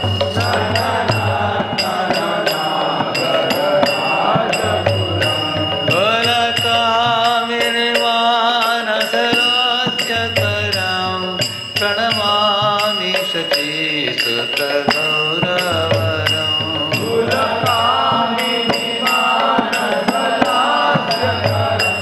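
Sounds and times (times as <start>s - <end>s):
small hand cymbals: 0.0s - 22.0s
man singing a hymn: 0.4s - 22.0s.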